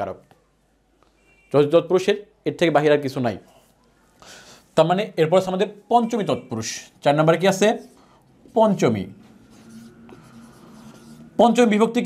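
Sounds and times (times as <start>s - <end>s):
marker scratching on whiteboard: 7.1s - 11.9s.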